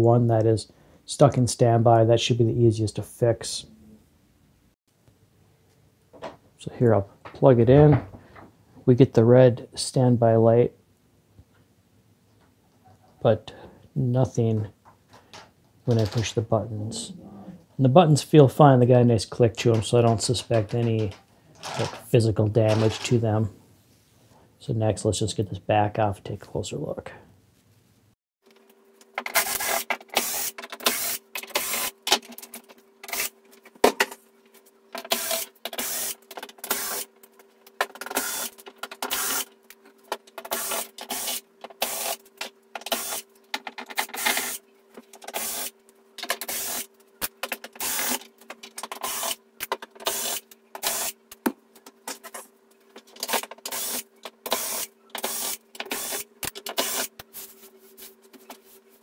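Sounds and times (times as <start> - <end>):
electric screwdriver whirring: 38.2 - 38.5.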